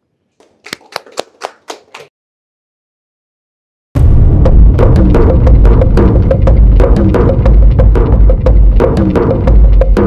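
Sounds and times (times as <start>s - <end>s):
hand clapping: 0.4s - 2.1s.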